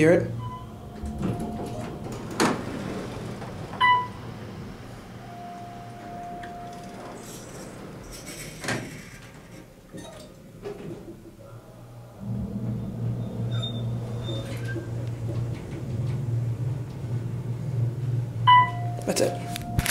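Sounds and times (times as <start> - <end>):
steady tone: 0.0 - 6.8, 11.4 - 19.9
elevator low steady hum: 0.0 - 19.9
elevator door knock or slide: 0.4 - 4.8.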